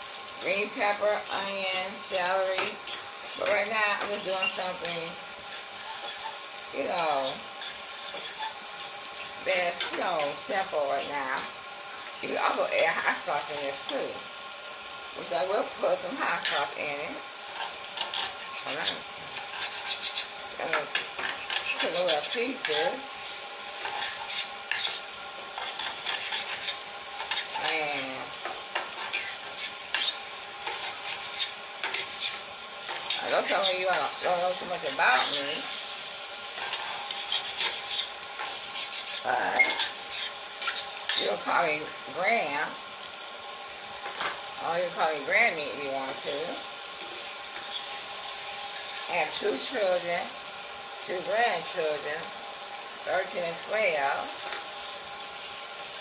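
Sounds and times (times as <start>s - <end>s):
oil sizzling in pan: 0.0s - 56.0s
utensil stirring spaghetti in skillet: 0.0s - 56.0s.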